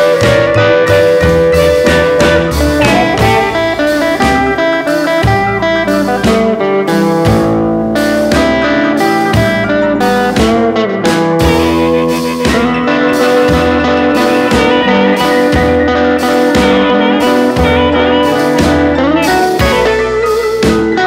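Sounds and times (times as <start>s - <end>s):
electric blues band playing: 0.0s - 21.0s
electric guitar: 0.0s - 21.0s.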